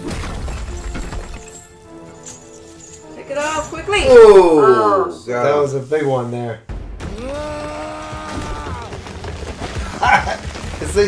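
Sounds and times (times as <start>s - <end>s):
battle music: 6.7s - 11.0s
man's war cry: 7.1s - 8.9s.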